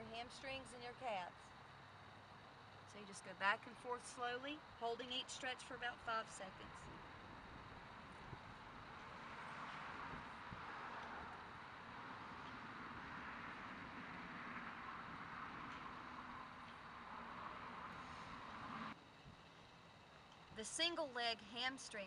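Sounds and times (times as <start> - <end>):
distant town traffic hiss: 0.0 - 22.0.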